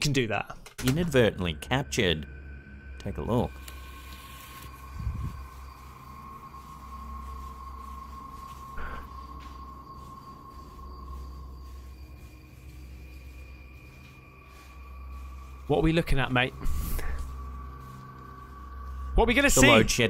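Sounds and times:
low hum: 0.9s - 20.0s.

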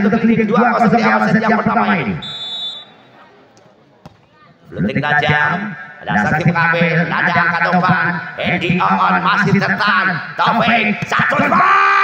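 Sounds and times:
referee's whistle blast: 2.1s - 3.2s.

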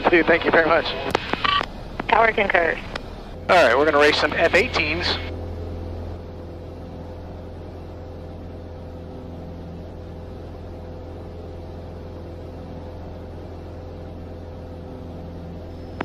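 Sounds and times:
faint steady whine: 0.0s - 16.0s
light plane engine drone in cabin: 0.0s - 16.0s.

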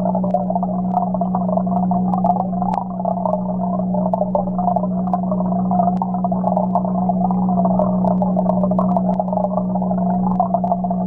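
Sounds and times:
aquarium pump hum underwater: 0.0s - 11.0s
bubbling: 0.0s - 11.0s
small clicks: 0.2s - 1.1s, 5.8s - 9.5s.

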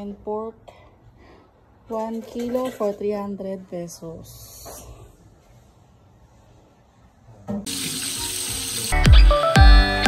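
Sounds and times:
meat sizzling in hot oil: 7.7s - 9.1s
background music with deep bass: 8.9s - 10.0s.

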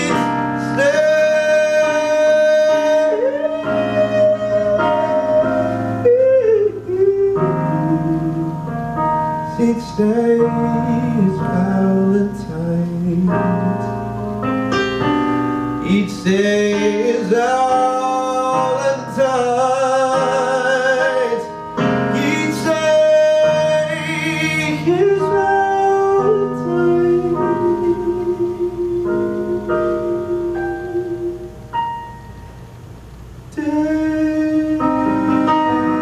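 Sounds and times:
man singing: 0.0s - 8.7s, 9.4s - 14.1s, 15.8s - 31.4s, 33.5s - 36.0s
keyboard piano chords: 0.0s - 36.0s.

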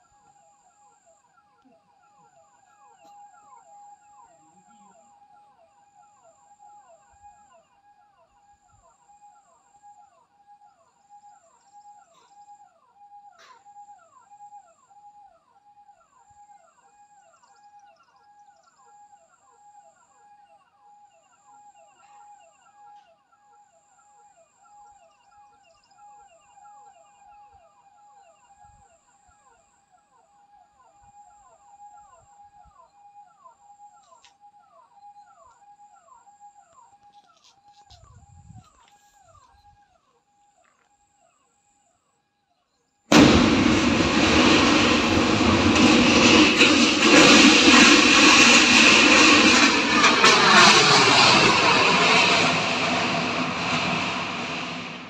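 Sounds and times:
loud rushing noise: 43.1s - 55.0s.

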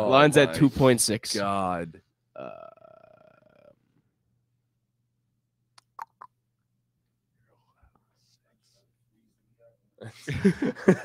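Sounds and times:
people talking: 0.0s - 2.7s.

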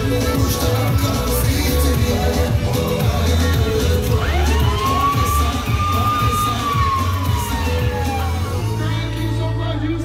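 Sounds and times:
dance music with bass beat: 0.0s - 10.0s
siren sweeping tone: 4.2s - 9.4s.

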